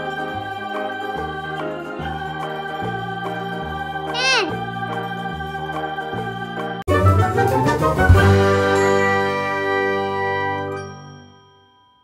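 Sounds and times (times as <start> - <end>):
chiming bell-like chord: 10.6 - 12.0.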